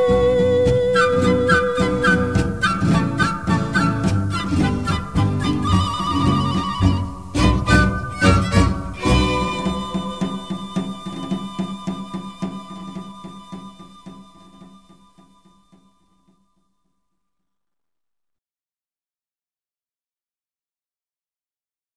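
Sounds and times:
mariachi song with violins and guitars: 0.0 - 15.4.

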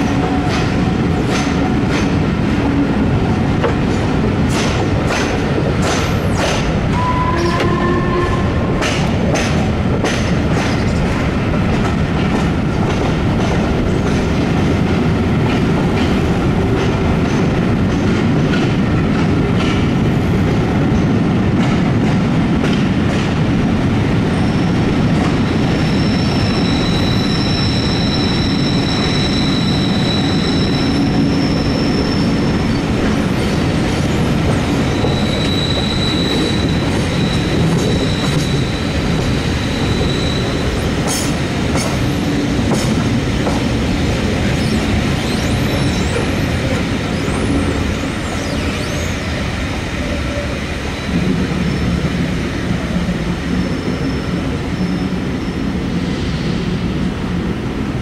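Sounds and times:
train coaches rolling over rails: 0.0 - 56.0
high-pitched wheel squeal: 7.0 - 8.5, 25.8 - 32.5, 34.9 - 39.0, 39.6 - 40.7.

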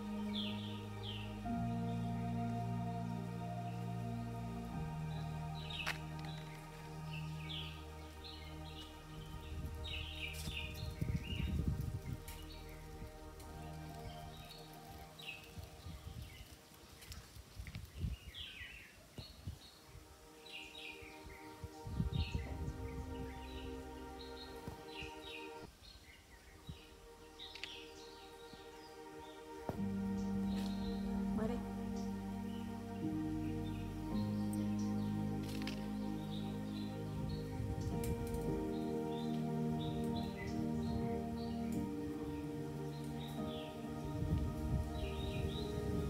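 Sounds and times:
low rumbling noise: 0.0 - 16.7, 21.2 - 25.7, 26.4 - 46.0
small birds chirping: 0.0 - 46.0
soft background music: 0.0 - 46.0.

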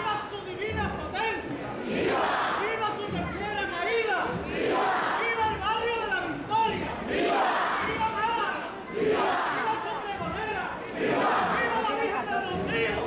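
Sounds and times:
crowd voices talking and calling out: 0.0 - 13.0.

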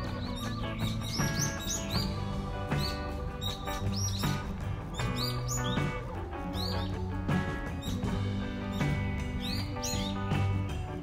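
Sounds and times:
short high bird chirps: 0.0 - 2.2, 8.7 - 10.3
music with a steady beat: 0.0 - 11.0.

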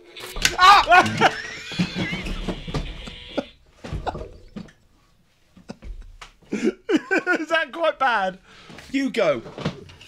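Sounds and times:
men laughing: 0.4 - 4.7, 5.6 - 7.7
knocks and rustles of movement: 8.7 - 10.0.

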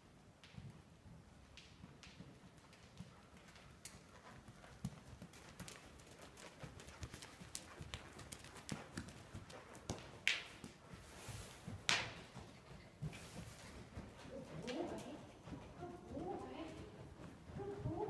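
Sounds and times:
horse hoofbeats on dirt: 0.5 - 18.0.

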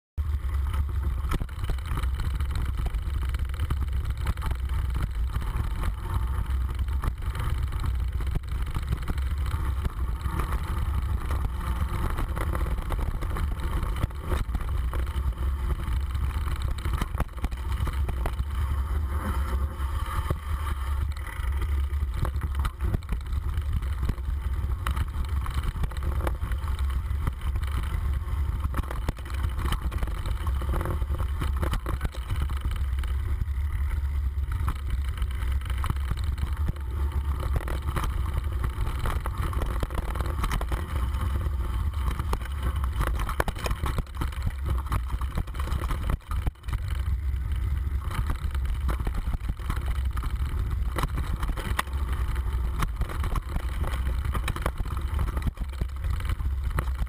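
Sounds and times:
wind rumble on moving camera: 0.2 - 57.0.

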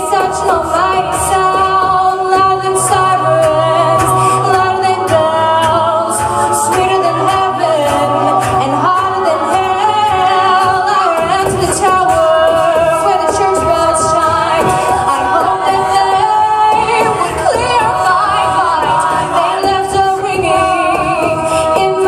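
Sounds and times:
a cappella vocal harmonies: 0.0 - 22.0
vocal percussion: 0.0 - 22.0.

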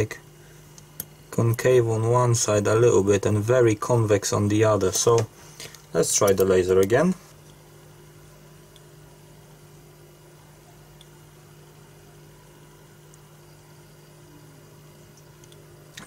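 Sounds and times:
faint two-tone hum: 0.0 - 16.0.

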